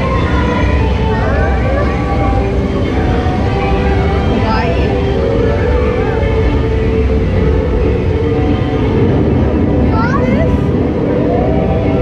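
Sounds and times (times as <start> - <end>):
voices: 0.0 - 7.0, 9.8 - 10.8
loud low rumble: 0.0 - 12.0
rising chirp-like glides: 0.0 - 12.0.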